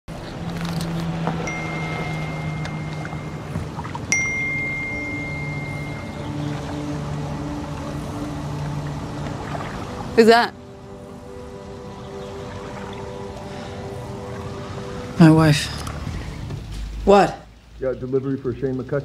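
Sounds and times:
soft low sustained music: 0.2s - 18.9s
phone message alert chimes: 1.5s - 6.2s.

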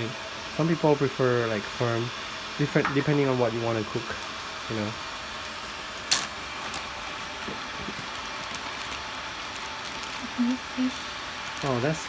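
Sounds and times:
hiss of water heating: 0.0s - 12.0s
plastic bag crinkle: 6.0s - 12.0s.

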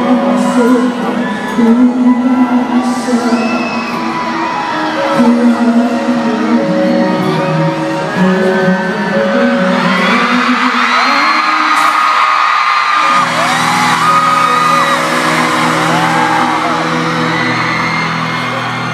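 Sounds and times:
amplified pop music: 0.0s - 18.9s
audience screaming: 0.0s - 18.9s.

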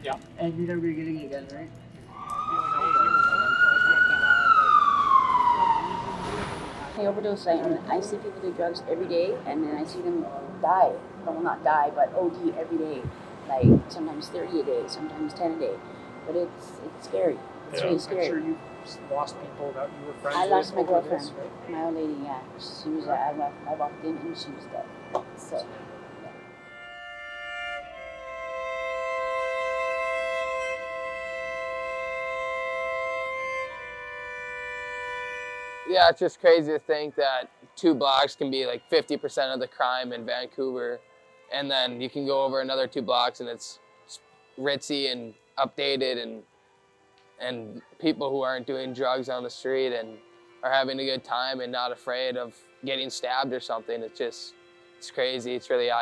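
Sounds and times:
emergency siren wailing: 2.1s - 8.5s
slow music of held chords: 7.4s - 56.0s.

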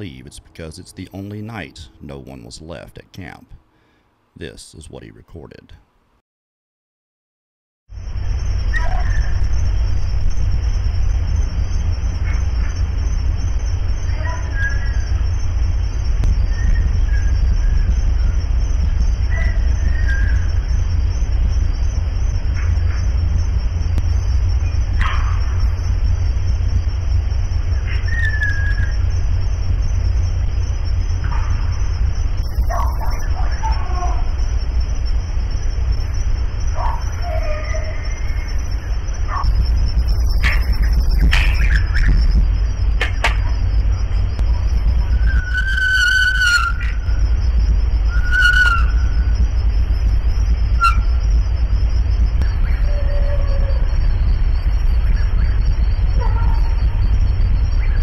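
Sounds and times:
constant high hum: 0.0s - 6.2s, 7.9s - 58.0s
low rumble: 7.9s - 58.0s
short pitched calls: 48.0s - 49.4s, 50.2s - 51.4s.

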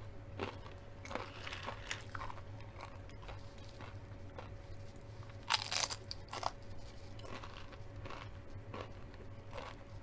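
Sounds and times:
crunchy chewing: 0.3s - 10.0s
tortilla chip crunching: 0.4s - 9.9s.

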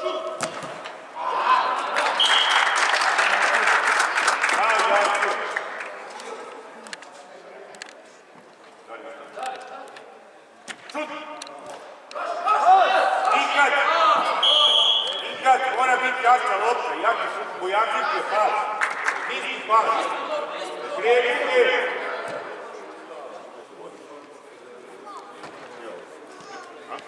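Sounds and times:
players and coach shouting: 12.2s - 16.7s
short high whistle tone: 14.4s - 15.2s.

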